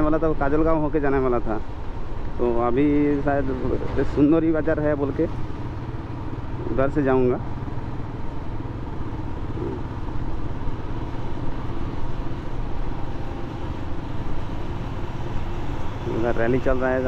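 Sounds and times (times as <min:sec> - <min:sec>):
motorcycle engine rumble: 0:00.0 - 0:17.0
road noise: 0:00.0 - 0:17.0.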